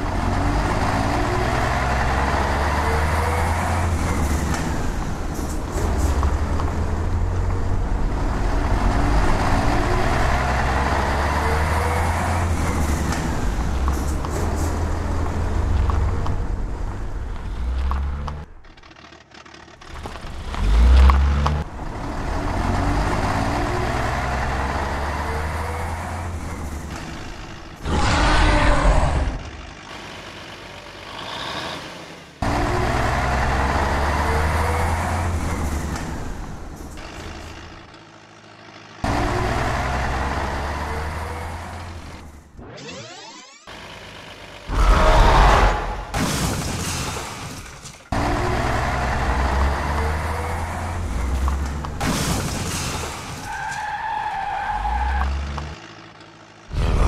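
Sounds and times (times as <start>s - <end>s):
truck engine revving: 0.0s - 47.5s, 48.1s - 57.0s.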